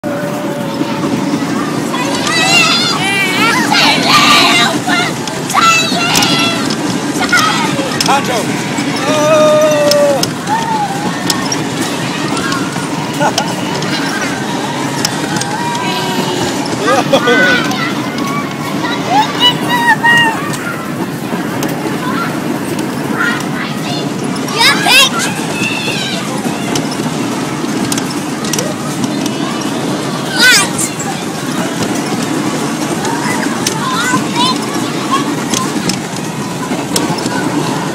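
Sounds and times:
background hubbub: 0:00.0 - 0:37.9
ride vehicle rumbling: 0:00.0 - 0:37.9.

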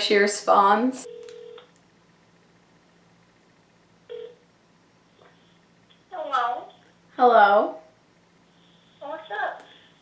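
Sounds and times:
phone call tone: 0:01.0 - 0:01.7, 0:04.1 - 0:04.4.

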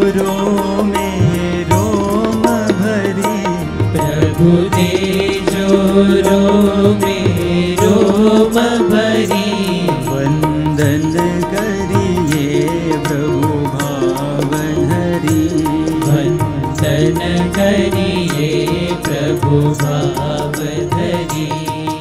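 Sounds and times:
harmonium chords: 0:00.0 - 0:22.0
men singing devotional song: 0:00.0 - 0:22.0.

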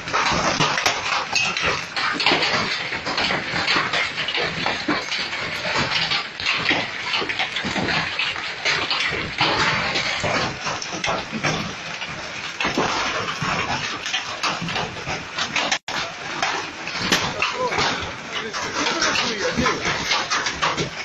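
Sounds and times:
hailstones pelting street and cars: 0:00.0 - 0:21.0.

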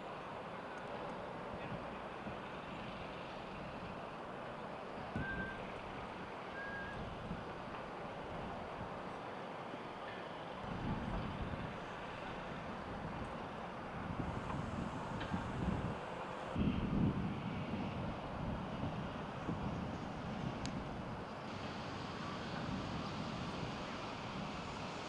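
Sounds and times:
wind buffeting microphone: 0:05.0 - 0:09.0, 0:10.6 - 0:25.0
steady background hiss: 0:19.2 - 0:25.0.

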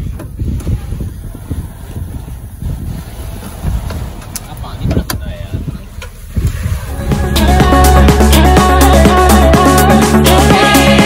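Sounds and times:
uneven low rumble: 0:00.0 - 0:11.0
indistinct voices: 0:04.2 - 0:11.0.

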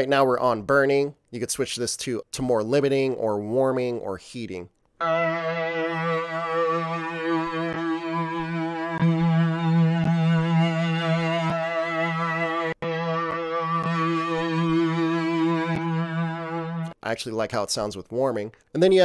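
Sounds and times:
synthesizer pad sustained note: 0:05.0 - 0:17.0.

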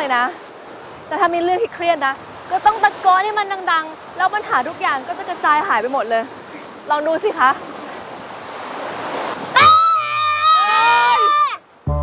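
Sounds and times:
sea surf: 0:00.0 - 0:12.0
people yelling together: 0:09.5 - 0:11.6.

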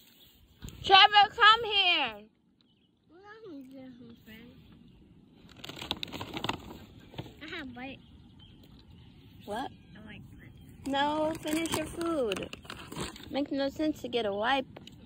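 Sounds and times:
clicks and rustling: 0:10.9 - 0:13.4.

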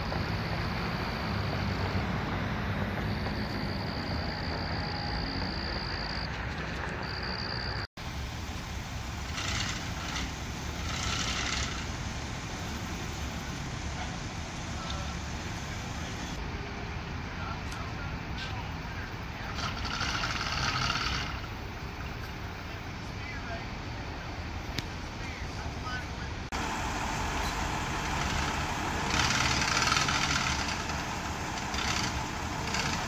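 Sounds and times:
diesel engine rumbling: 0:00.0 - 0:33.0
faint voices: 0:14.7 - 0:20.3.

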